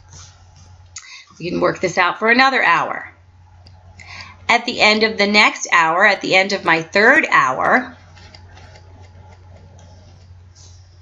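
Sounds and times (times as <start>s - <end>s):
steady low hum: 0.0s - 11.0s
stylus ticking and scratching: 6.3s - 11.0s.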